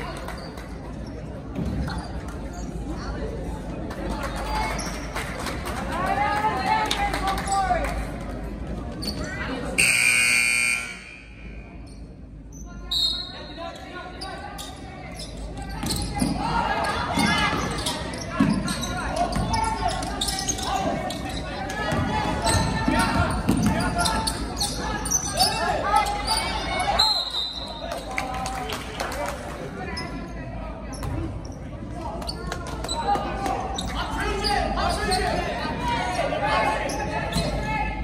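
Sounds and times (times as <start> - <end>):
loud gym buzzer: 9.8 - 11.6
referee whistle blasts: 9.8 - 11.8.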